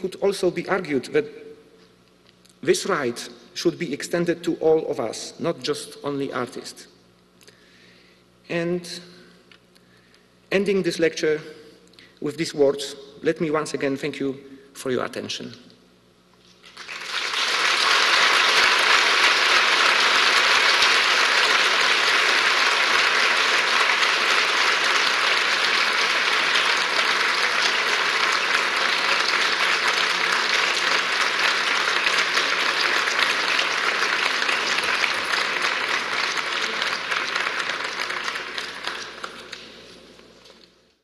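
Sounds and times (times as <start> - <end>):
audience applauding: 16.6 - 39.7.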